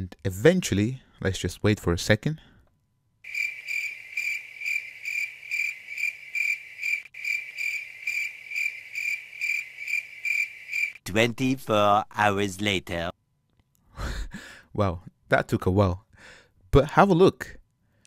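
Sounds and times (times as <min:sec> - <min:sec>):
crickets chirping: 0:03.2 - 0:11.0.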